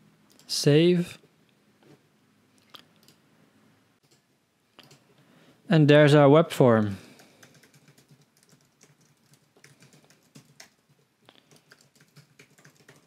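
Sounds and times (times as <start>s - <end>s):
faint keyboard typing: 2.6s - 3.2s, 4.0s - 5.1s, 6.8s - 13.0s.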